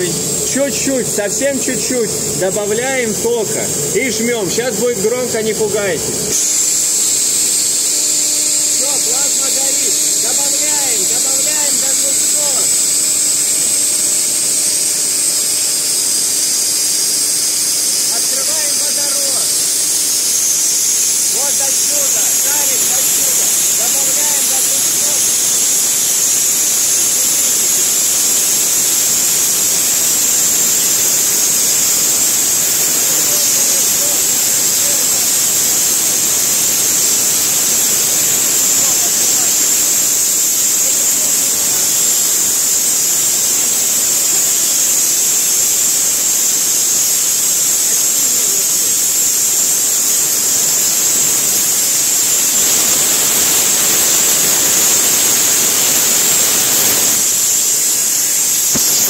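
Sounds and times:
plasma jet hissing: 0.0 - 59.0.

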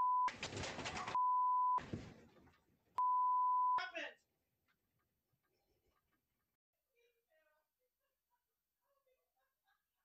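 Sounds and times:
high censor bleep: 3.0 - 3.8.

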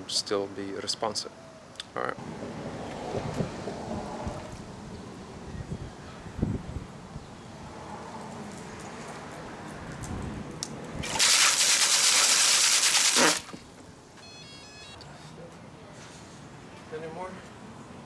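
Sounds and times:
propellers churning water: 11.0 - 13.6
knocks and water sloshing: 11.0 - 13.8.

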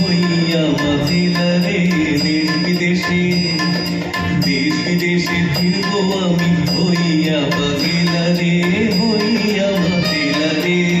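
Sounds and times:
quick percussion beat: 0.0 - 11.0.

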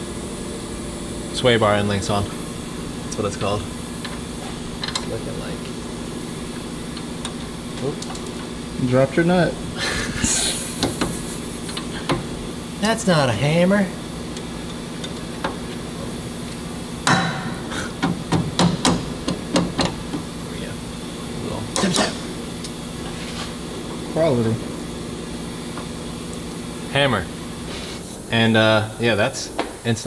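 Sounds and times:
steady background hum: 0.0 - 30.0.

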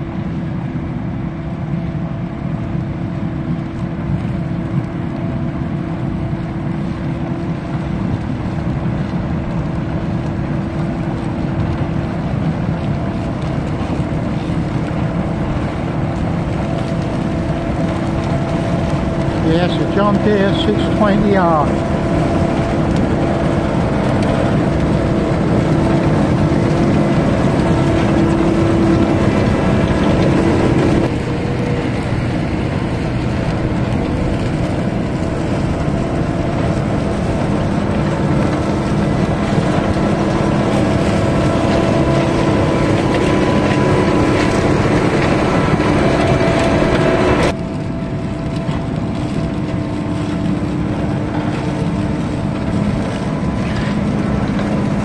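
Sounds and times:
harvester engine droning: 0.0 - 55.0.

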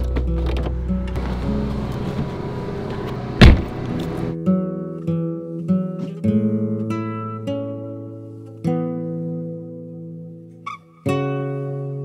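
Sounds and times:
acoustic guitar strumming: 0.2 - 12.0.

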